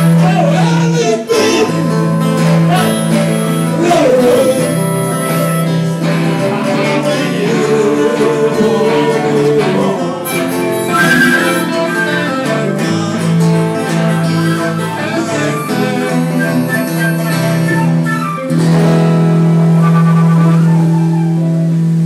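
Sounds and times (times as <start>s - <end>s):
live blues band: 0.0s - 22.0s
wind instrument melody: 0.0s - 22.0s.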